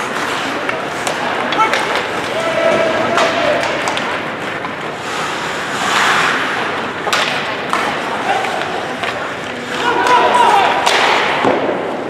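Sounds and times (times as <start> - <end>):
skates scraping on ice: 0.0 - 12.0.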